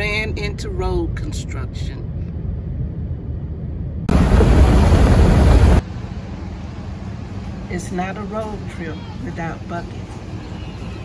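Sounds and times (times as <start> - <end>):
car road rumble: 0.0 - 11.0
loud rushing noise: 4.0 - 6.6.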